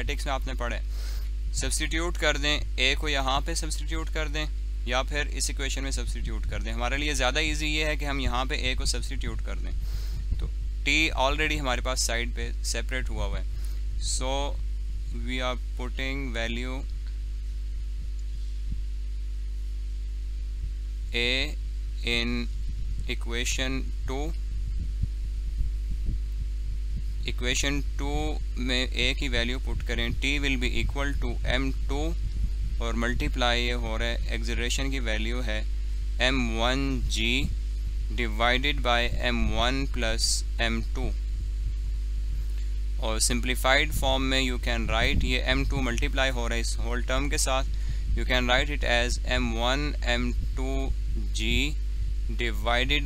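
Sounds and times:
person speaking: 0.0s - 17.0s, 21.1s - 24.4s, 27.1s - 41.2s, 43.0s - 53.0s
faint high steady tones: 0.0s - 53.0s
low electrical hum: 0.0s - 53.0s.

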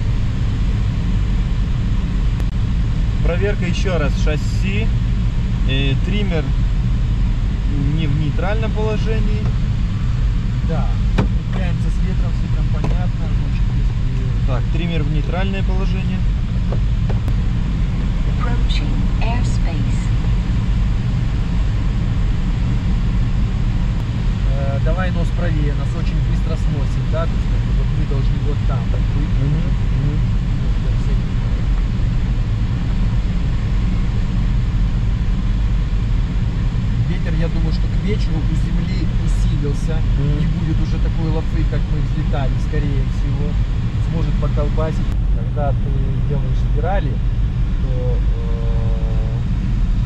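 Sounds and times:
light aircraft drone: 0.0s - 50.0s.

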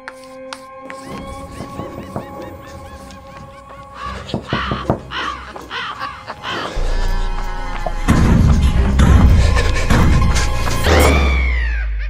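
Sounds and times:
eerie music with sustained tones: 0.2s - 12.0s
crow cawing: 1.0s - 9.0s
deep low drone: 6.8s - 11.9s.

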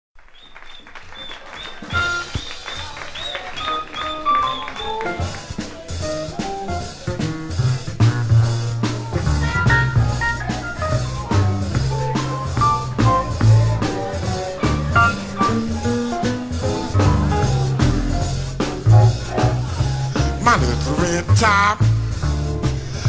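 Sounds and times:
jazz combo playing: 1.9s - 23.0s
deep low bass notes: 6.8s - 23.0s.

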